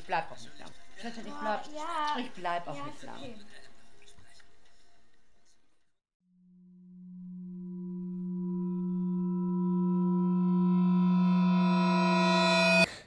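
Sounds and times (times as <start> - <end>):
synthesized drone tone: 6.4 - 12.9.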